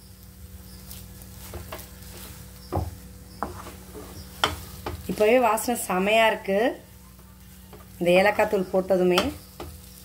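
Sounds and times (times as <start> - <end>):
wooden spatula scraping a pan: 0.8 - 6.5.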